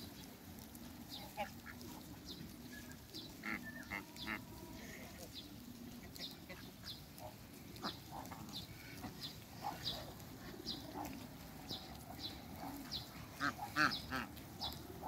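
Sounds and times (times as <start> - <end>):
geese peeping softly: 0.0 - 15.0
loud goose calls: 1.1 - 2.2, 2.9 - 15.0.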